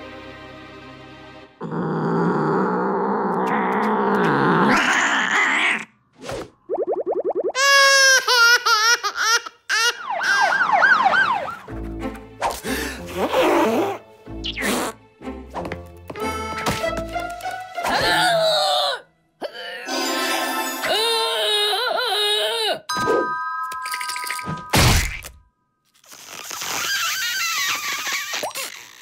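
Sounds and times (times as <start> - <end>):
warbling siren-like glides: 10.0 - 11.7
cartoon music: 16.2 - 17.0.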